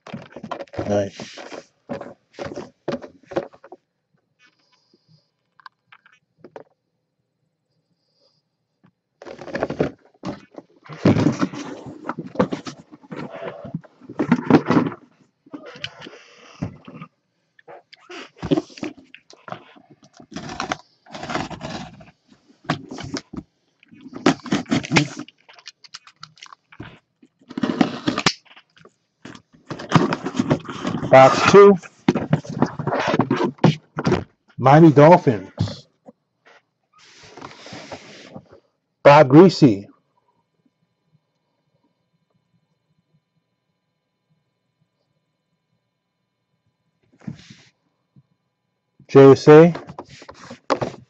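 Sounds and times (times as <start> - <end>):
cardboard rustling: 0.0 - 3.8, 9.2 - 15.1, 18.1 - 34.3, 49.6 - 51.0
cardboard boxes scraping: 9.2 - 15.0, 20.2 - 23.3, 24.1 - 25.2, 27.5 - 28.3, 37.0 - 38.4.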